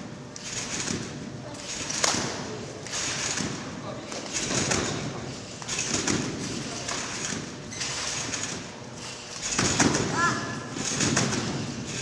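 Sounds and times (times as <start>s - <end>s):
trampoline springs creaking: 0.4s - 12.0s.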